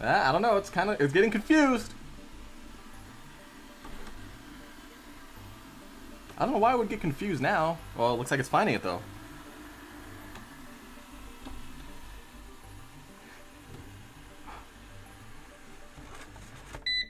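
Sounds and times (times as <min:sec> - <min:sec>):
robot vacuum humming: 0:00.0 - 0:17.0.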